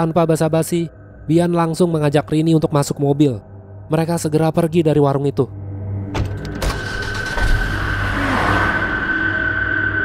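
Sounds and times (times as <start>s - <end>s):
car pulling away rush: 6.7s - 9.7s.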